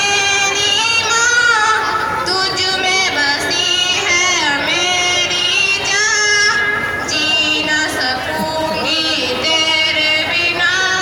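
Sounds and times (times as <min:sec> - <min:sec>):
child singing: 0:00.0 - 0:11.0.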